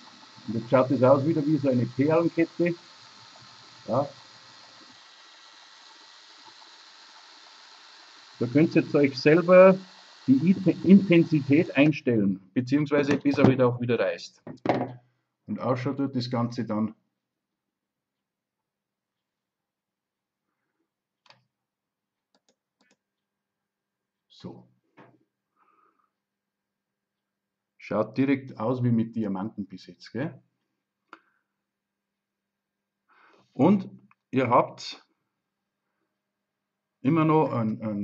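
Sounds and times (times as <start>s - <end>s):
faint room tone hiss: 0.0s - 14.4s.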